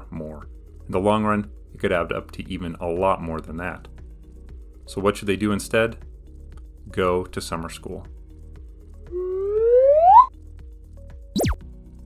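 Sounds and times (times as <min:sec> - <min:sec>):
quiet music bed: 0:00.0 - 0:12.0
rising whistle-like tone: 0:09.1 - 0:10.3.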